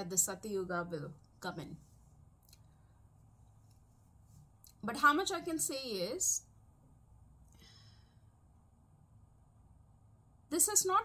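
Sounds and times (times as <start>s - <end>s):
faint breath out: 7.5s - 8.3s.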